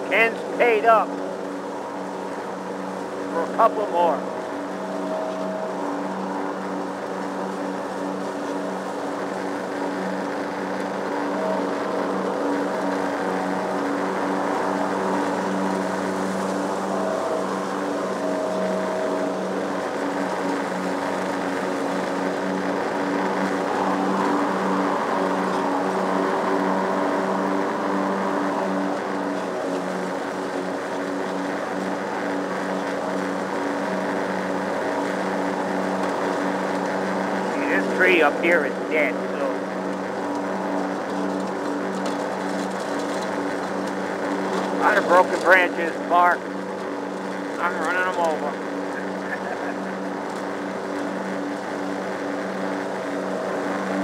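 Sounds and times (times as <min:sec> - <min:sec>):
lawn mower engine running: 0:00.0 - 0:54.0.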